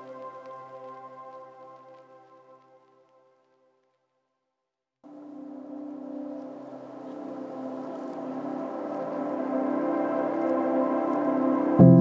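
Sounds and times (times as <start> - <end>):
sustained lofi chord: 5.1 - 12.0.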